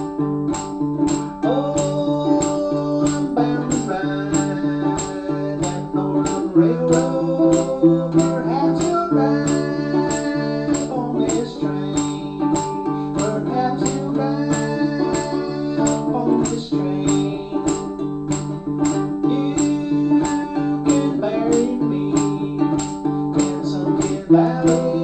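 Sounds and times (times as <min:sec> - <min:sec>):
man singing: 0:00.0 - 0:25.0
ukulele strummed: 0:00.0 - 0:25.0.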